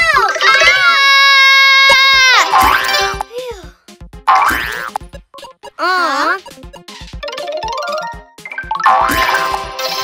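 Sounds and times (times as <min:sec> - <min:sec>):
choppy game music: 0:00.0 - 0:01.3, 0:02.2 - 0:10.0.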